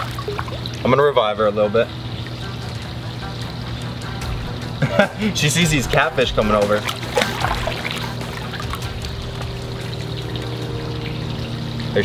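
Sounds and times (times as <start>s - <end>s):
steady low hum: 0.0s - 12.0s
water trickling and lapping: 0.0s - 12.0s.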